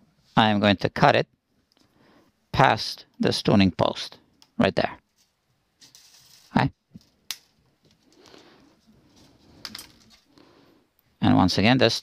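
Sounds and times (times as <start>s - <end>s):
faint rustling: 5.0s - 10.9s.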